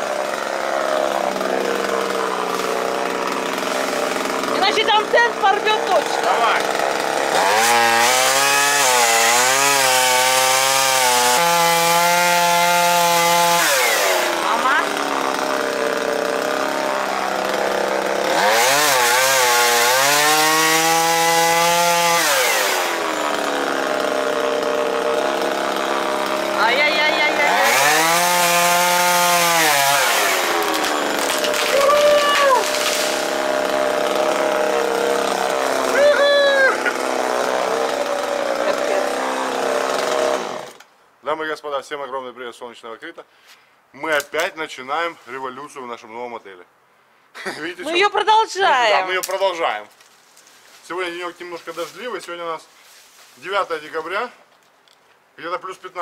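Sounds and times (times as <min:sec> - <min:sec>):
chainsaw cutting branches: 0:00.0 - 0:40.9, 0:48.7 - 0:54.6.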